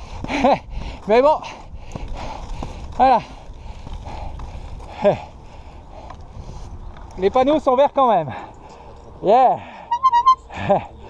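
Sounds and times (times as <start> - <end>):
wind rumbling on microphone: 0.0 - 7.8
skate wheels rolling on asphalt: 0.0 - 8.0.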